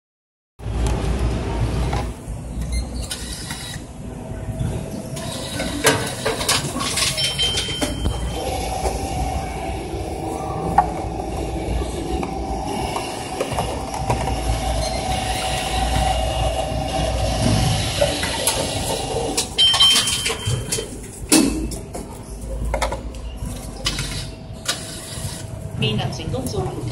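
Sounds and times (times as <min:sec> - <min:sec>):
machine clunk: 0:05.2 - 0:08.3
internal motor running: 0:07.7 - 0:19.8.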